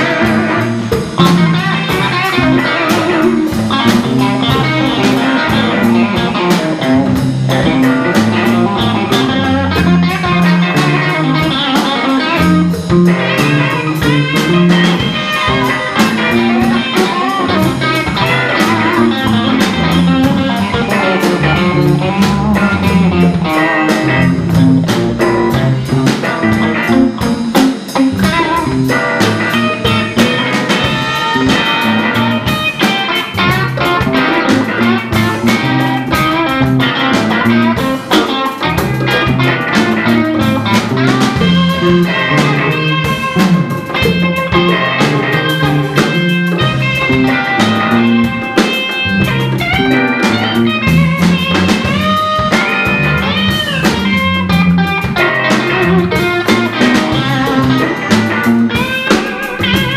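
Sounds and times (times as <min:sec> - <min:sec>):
blues band playing: 0:00.0 - 0:59.9
electric guitar lead: 0:00.0 - 0:59.9.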